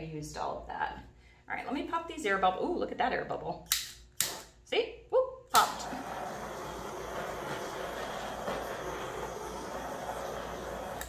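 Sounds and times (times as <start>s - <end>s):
heat gun blowing air: 5.6s - 11.0s.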